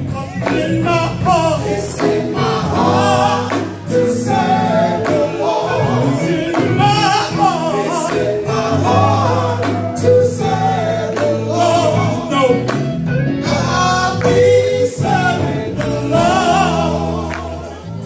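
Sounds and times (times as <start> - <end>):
electric guitar: 0.0 - 18.0
low bass notes: 0.0 - 18.0
woman and man singing gospel: 0.0 - 18.0.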